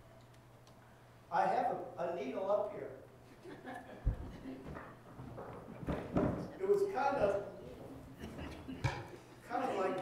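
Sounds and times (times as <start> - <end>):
man speaking over a microphone: 6.6 - 7.7, 9.4 - 10.0.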